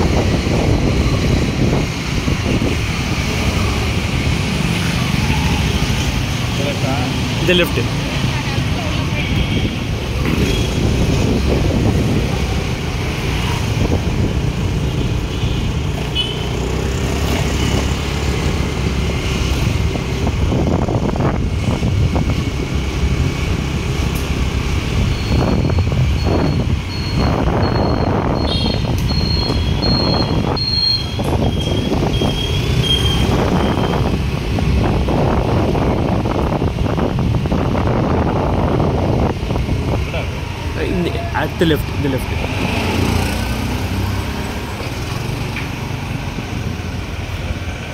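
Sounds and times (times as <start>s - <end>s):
vehicle engine and road noise: 0.0s - 47.9s.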